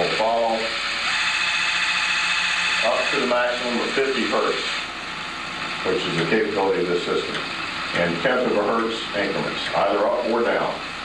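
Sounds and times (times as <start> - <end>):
high whine: 0.0 - 11.0.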